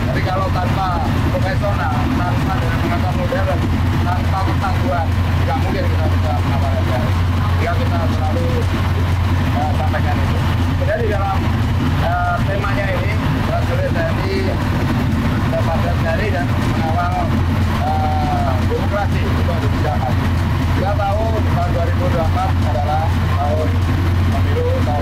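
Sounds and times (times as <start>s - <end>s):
military vehicle engines rumbling: 0.0s - 25.0s
voice talking indistinctly: 0.0s - 25.0s.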